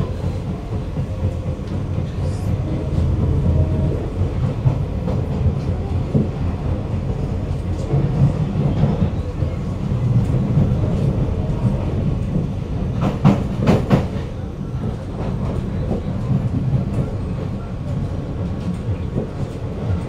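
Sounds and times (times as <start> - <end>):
train rumbling: 0.0 - 20.0.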